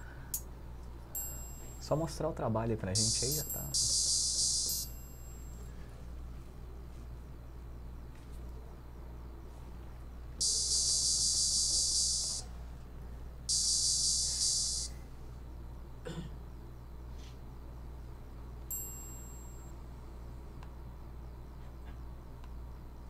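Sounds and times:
steady low hum: 0.0 - 23.0
high bright chime: 1.2 - 1.9, 3.0 - 5.7, 18.7 - 19.7.

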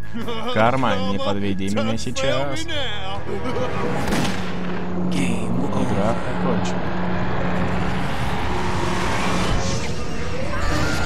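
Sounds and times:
low droning hum: 0.9 - 11.0
dense rushing noise: 2.8 - 11.0.

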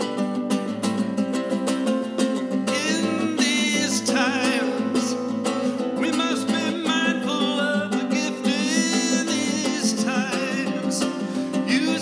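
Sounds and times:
nylon-string acoustic guitar: 0.0 - 12.0.

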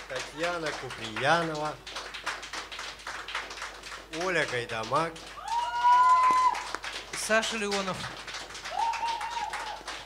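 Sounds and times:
people clapping: 0.0 - 10.0.

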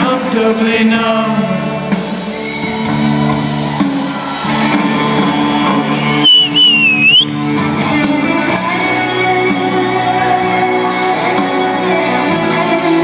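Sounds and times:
live rock band playing: 0.0 - 13.0
loud wavering high whistle: 6.2 - 7.3.

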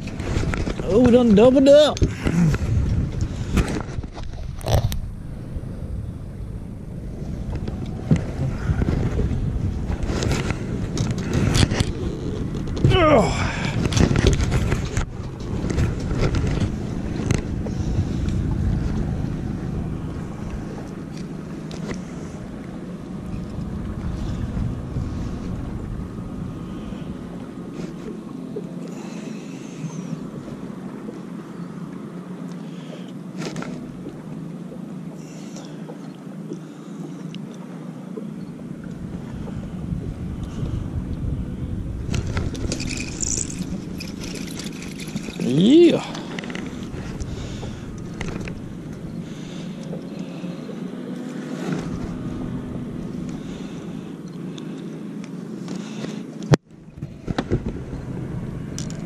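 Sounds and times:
wind on microphone: 0.0 - 28.0, 38.8 - 50.1
boat engine low rumble: 0.0 - 59.0
fishing tackle clicks: 42.3 - 45.5, 58.8 - 59.0.

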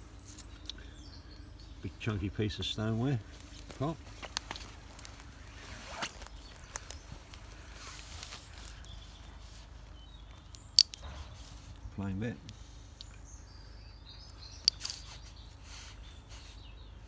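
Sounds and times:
hands rustling in leaf litter: 2.0 - 10.7.

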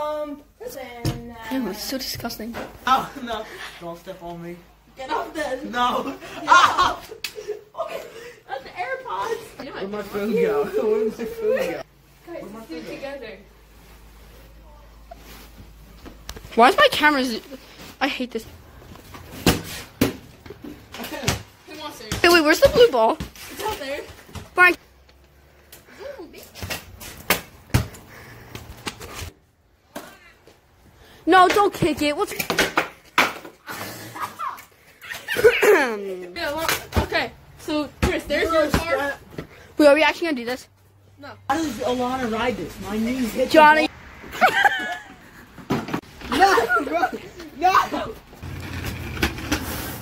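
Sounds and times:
basketball bouncing on concrete: 21.2 - 23.4, 27.3 - 28.7, 38.0 - 39.0
plastic wheels rolling on concrete: 47.4 - 50.0.

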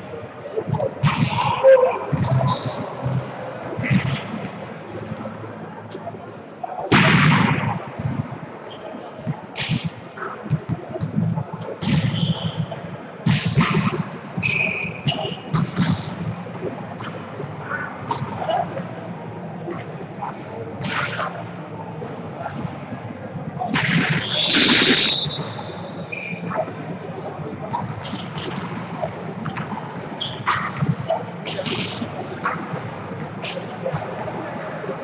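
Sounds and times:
court noise: 0.0 - 35.0
murmur of players' voices: 0.0 - 35.0.

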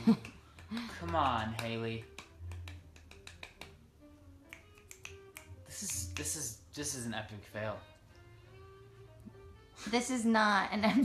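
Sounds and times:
finger snaps and clicks: 0.2 - 6.6.

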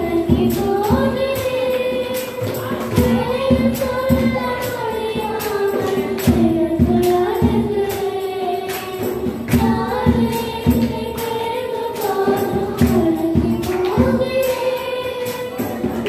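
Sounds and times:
accompaniment with steady beat: 0.0 - 16.0
girls singing into microphones: 0.0 - 16.0.

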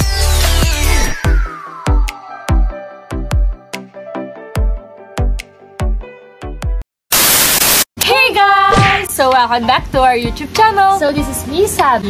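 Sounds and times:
tv static hiss: 7.1 - 7.9.

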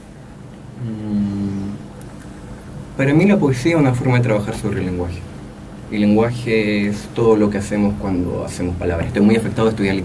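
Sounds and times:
man humming in hesitation: 0.8 - 1.9.

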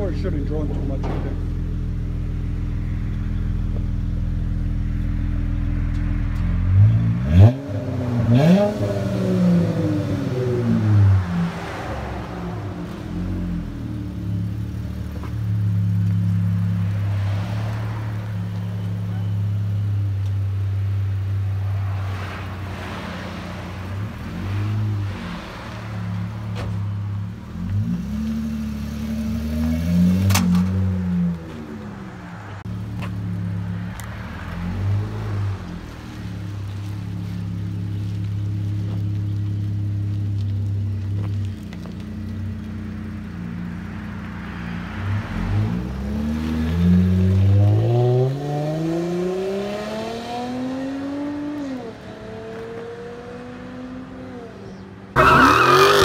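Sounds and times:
car engine idling and revving: 0.0 - 56.0.

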